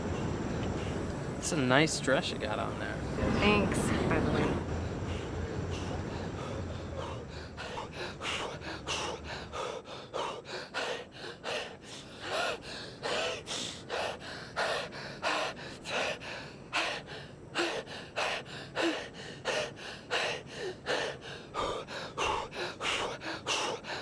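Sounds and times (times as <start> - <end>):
man panting hard: 4.9 - 24.0.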